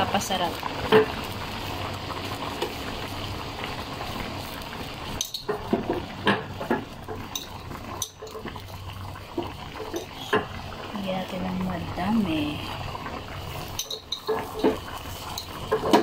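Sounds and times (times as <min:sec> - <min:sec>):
soup bubbling at a boil: 0:00.0 - 0:16.0
metal spoon clinking on wok: 0:13.8 - 0:14.7.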